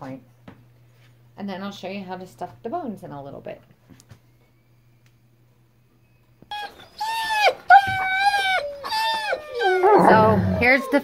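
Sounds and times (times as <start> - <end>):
dog whining: 6.5 - 11.0.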